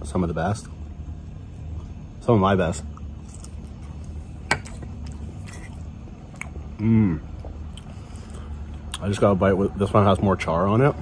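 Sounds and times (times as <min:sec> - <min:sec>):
low outdoor rumble: 0:00.0 - 0:11.0
person chewing food: 0:02.9 - 0:09.0.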